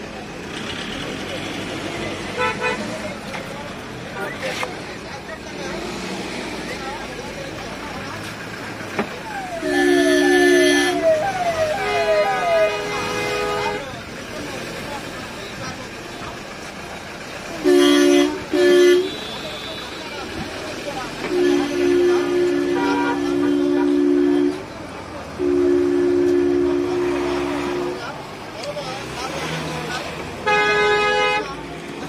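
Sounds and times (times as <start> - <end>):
higher-pitched horn: 9.3 - 13.9, 21.3 - 24.6, 25.4 - 28.0
two-note vehicle horn honking: 9.3 - 13.9, 17.6 - 19.8, 21.3 - 24.6, 25.4 - 28.1.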